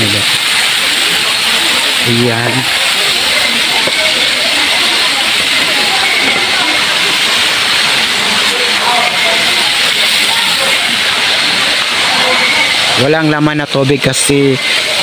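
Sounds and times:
faint indistinct voices: 0.0s - 15.0s
loud steady hiss: 0.0s - 15.0s.

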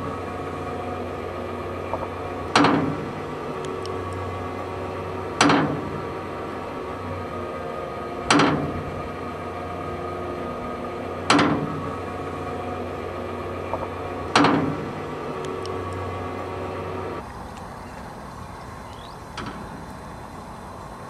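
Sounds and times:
hum of pressurized water: 0.0s - 21.0s
rain gun arm clacking: 13.7s - 17.0s.

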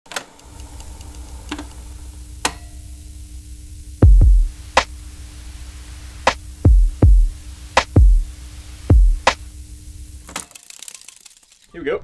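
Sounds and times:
low electrical hum: 0.1s - 12.0s.

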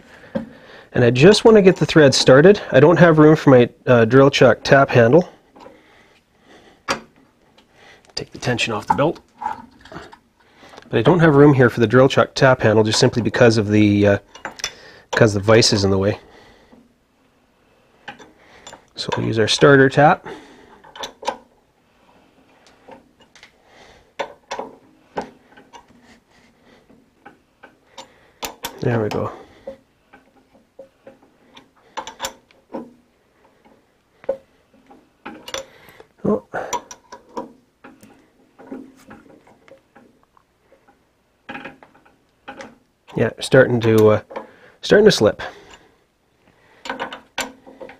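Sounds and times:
light clicks and metallic knocks: 6.8s - 16.9s, 18.0s - 21.6s, 22.2s - 45.9s, 46.7s - 47.9s
metallic clinks of steel tooling: 35.3s - 35.8s.

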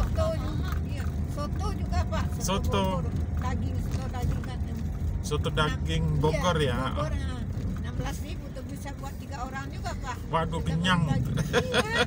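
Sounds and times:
people talking: 0.0s - 4.9s, 5.6s - 12.0s
motorcycle engine and road noise: 0.0s - 12.0s.

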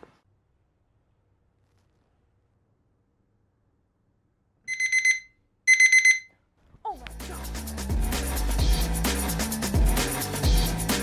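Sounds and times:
digital alarm beeping: 4.7s - 6.3s
music with beat and bass: 7.1s - 11.0s.

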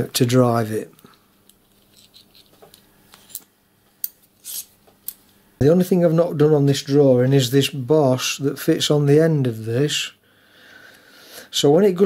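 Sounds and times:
metal parts scraping: 1.6s - 5.2s.

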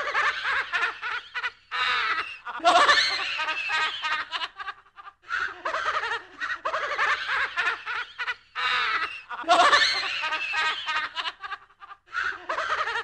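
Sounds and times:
spooky laugh in rapid pulses: 0.0s - 13.0s.

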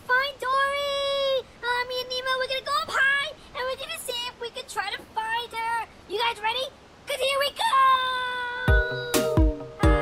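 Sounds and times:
high child-like voice speaking: 0.0s - 10.0s
voice holding sung note: 8.1s - 10.0s.

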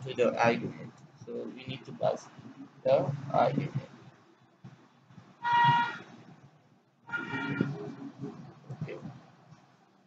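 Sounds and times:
short horn toot: 5.4s - 6.1s, 7.1s - 7.8s.

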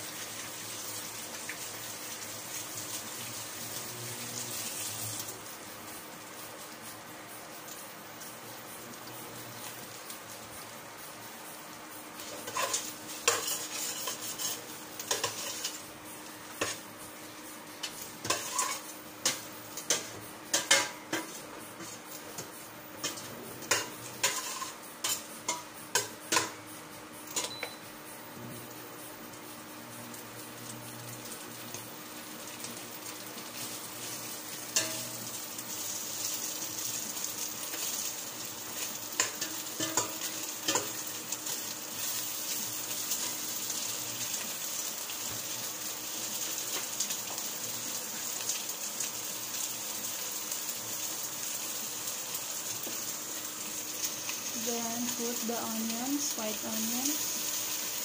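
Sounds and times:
chili and spices sizzling: 0.0s - 58.0s
metal spoon clinking on pot: 27.4s - 27.8s, 39.2s - 41.0s.

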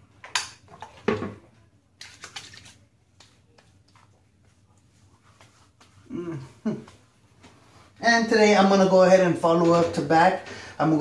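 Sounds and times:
soft wet pats on skin: 2.0s - 6.1s.

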